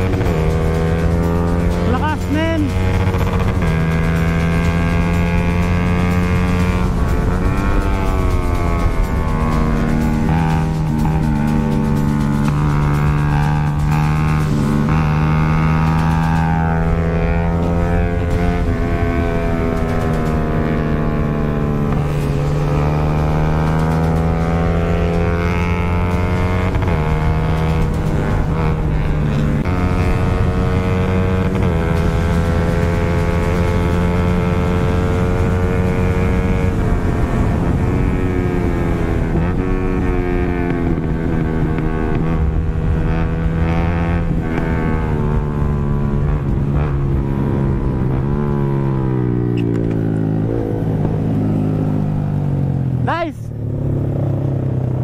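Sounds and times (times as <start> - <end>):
motorcycle engine revving: 0.0 - 55.0.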